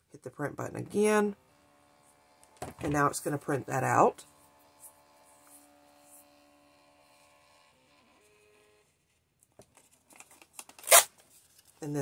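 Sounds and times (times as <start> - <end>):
thermal printer motor whining: 1.3 - 8.9
paper rustling: 9.1 - 11.8
paper tearing: 10.2 - 11.7.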